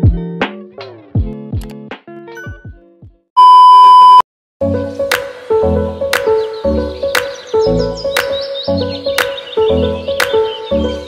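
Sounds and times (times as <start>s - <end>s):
background music: 0.0s - 3.2s, 4.6s - 11.0s
loud electronic beep: 3.4s - 4.2s.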